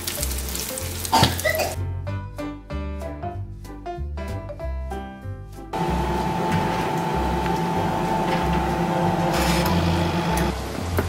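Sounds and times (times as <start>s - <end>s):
food sizzling in a frying pan: 0.0s - 1.8s
background music: 0.0s - 11.0s.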